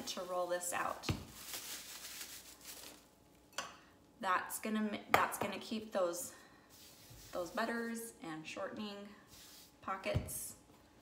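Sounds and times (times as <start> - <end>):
plastic wrap crinkling: 0.0 - 3.2.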